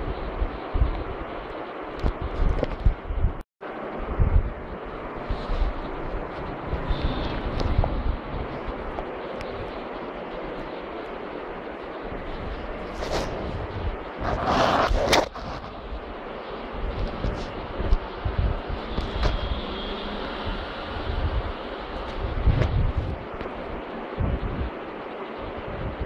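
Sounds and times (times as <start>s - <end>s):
phone rubbing against cloth: 12.9s - 15.9s.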